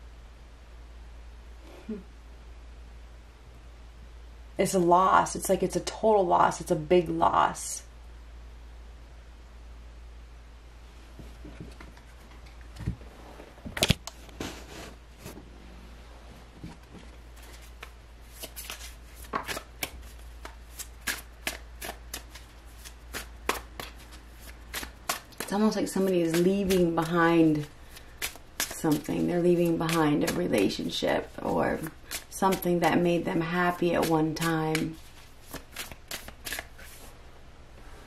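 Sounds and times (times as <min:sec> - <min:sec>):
cards being shuffled: 0:17.0 - 0:32.7, 0:33.7 - 0:37.1.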